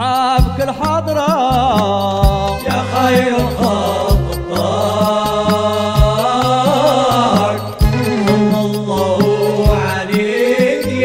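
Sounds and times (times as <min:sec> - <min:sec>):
low drum beats: 0:00.4 - 0:10.4
wavering melodic line: 0:02.3 - 0:11.0.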